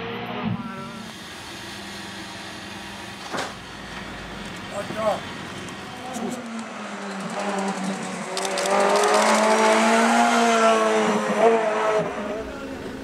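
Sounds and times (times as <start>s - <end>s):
race car engine revving: 0.0s - 13.0s.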